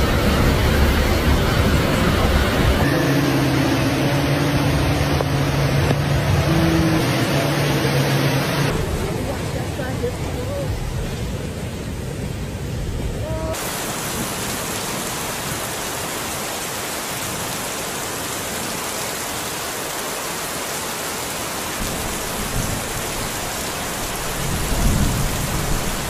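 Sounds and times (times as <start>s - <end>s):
low rumbles: 0.0s - 14.4s
heavy rain hissing: 0.0s - 26.0s.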